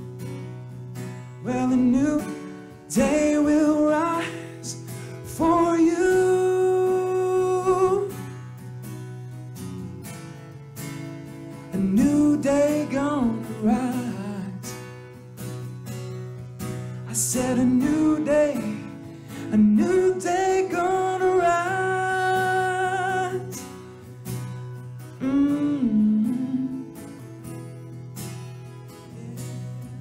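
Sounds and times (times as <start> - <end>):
strummed acoustic guitar: 0.0 - 30.0
man singing: 1.4 - 8.2, 11.7 - 14.8, 17.0 - 23.7, 25.2 - 27.0.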